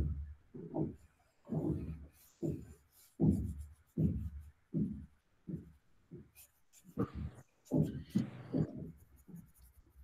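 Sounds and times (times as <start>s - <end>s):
pen scratching on paper: 1.5s - 4.6s, 6.2s - 10.0s.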